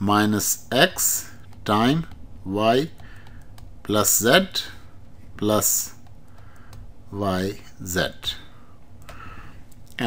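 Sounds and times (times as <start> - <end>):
low steady hiss: 0.0 - 10.0.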